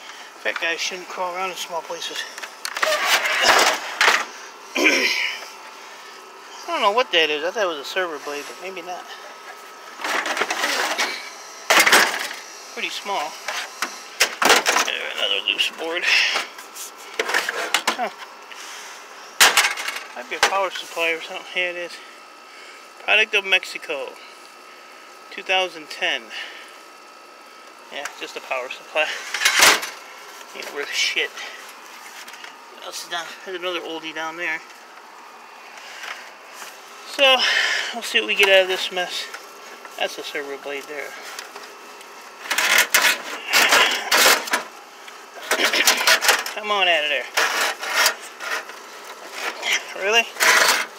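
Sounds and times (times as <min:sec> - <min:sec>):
scrap metal parts clunking and rattling: 0:02.0 - 0:04.3, 0:09.0 - 0:12.4, 0:13.4 - 0:18.1, 0:19.4 - 0:20.8, 0:29.0 - 0:30.0, 0:42.4 - 0:44.7, 0:45.4 - 0:50.9.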